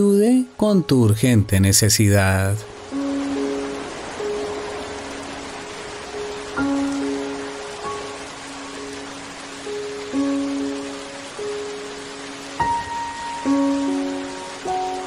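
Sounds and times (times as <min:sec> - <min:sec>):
soft instrumental music: 0:00.0 - 0:15.0
steady hiss: 0:00.0 - 0:15.0.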